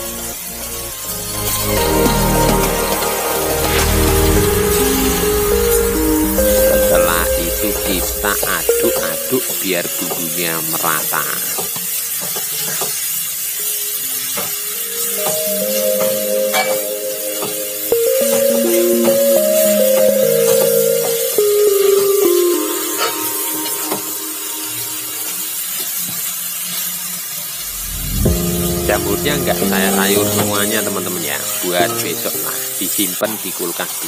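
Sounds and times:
slow background music: 0.0 - 11.6, 13.4 - 26.0, 27.6 - 33.8
faint sizzling: 0.0 - 34.0.

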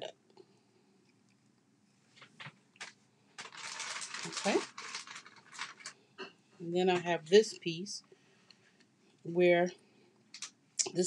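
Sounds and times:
handling rustle: 2.1 - 6.0.

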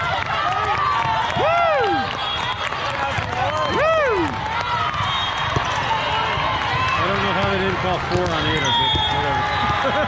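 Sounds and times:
sneakers squeaking on court floor: 8.0 - 10.0.

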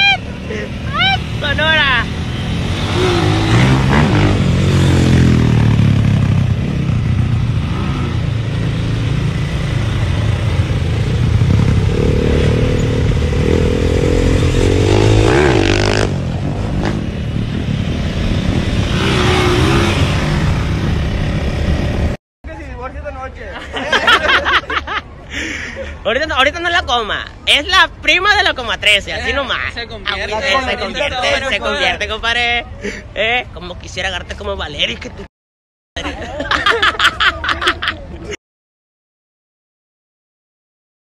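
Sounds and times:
motorcycle engine revving: 1.4 - 22.2
people laughing and talking: 23.3 - 26.3, 30.3 - 33.3, 36.0 - 38.4.

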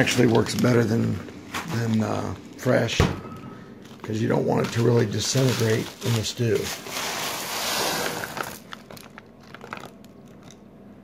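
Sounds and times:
plastic bag crinkling: 0.0 - 2.9, 3.8 - 10.6
frozen vegetables pouring out: 3.8 - 10.6.

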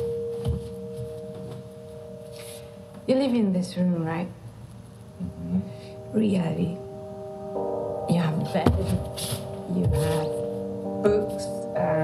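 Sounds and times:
steady pure tones: 0.0 - 12.0
soft low thump: 8.5 - 9.2.

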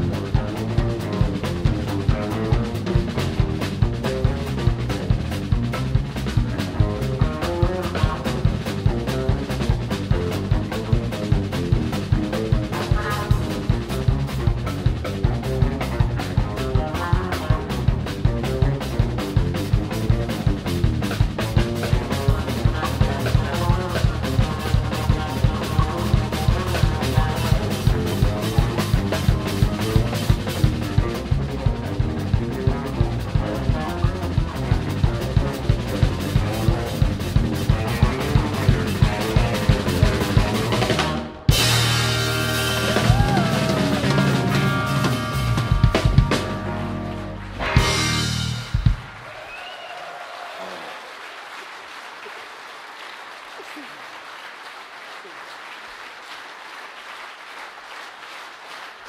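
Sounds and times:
electric guitar: 0.0 - 49.2
bass guitar: 0.0 - 49.8
drum kit beat: 0.0 - 49.8.

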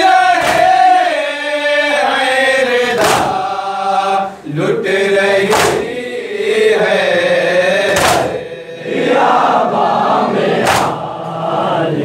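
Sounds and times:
men chanting through a microphone: 0.0 - 12.0.

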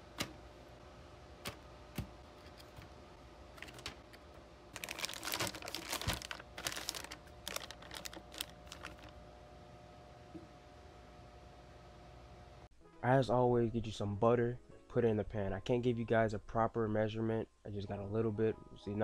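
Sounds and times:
faint steady hum: 0.0 - 19.0
plastic bag crinkling: 3.6 - 4.1, 4.7 - 9.2.

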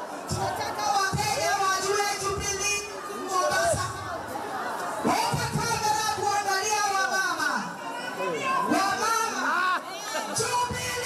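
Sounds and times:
crowd of women chattering: 0.0 - 11.0.

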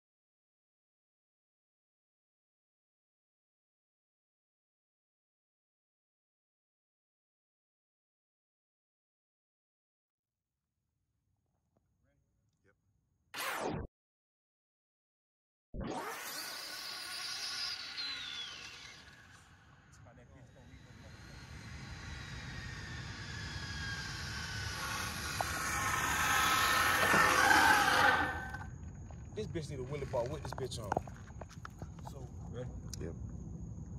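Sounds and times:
electric motor whine: 15.9 - 28.7.

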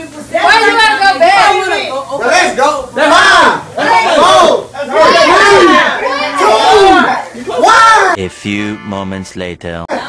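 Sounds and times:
people shouting and squealing: 0.2 - 9.1.

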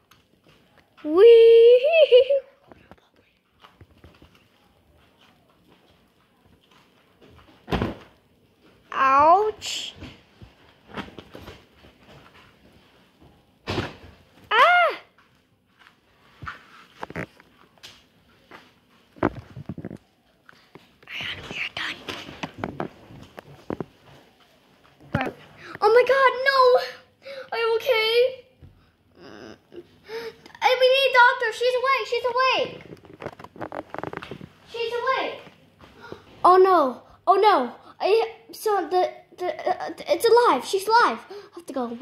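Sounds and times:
person whispering: 21.0 - 22.2.

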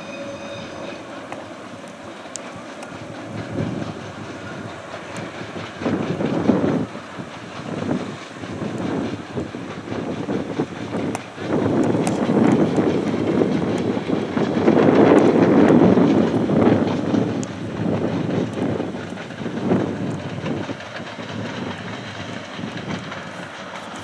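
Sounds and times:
distant steam locomotive exhaust: 0.0 - 24.0
train rolling noise: 0.0 - 24.0.

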